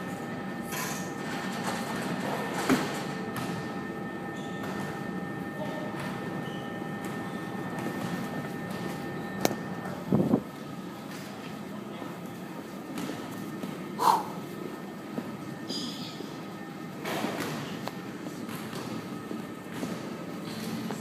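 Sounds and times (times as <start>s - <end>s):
indoor room hum with tones: 0.0s - 21.0s.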